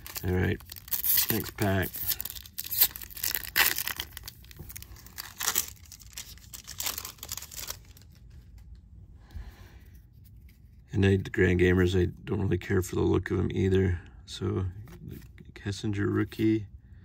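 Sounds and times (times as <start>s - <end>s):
foil wrapper tearing and crinkling: 0.0s - 8.4s.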